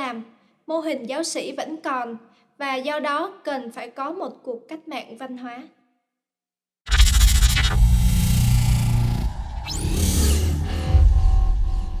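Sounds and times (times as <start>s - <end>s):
electronic music hit: 6.9s - 12.0s
whooshing sweeps: 6.9s - 12.0s.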